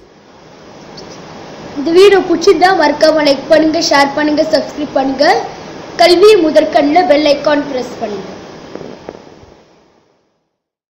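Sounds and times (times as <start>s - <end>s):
crackling hiss: 0.0s - 10.5s.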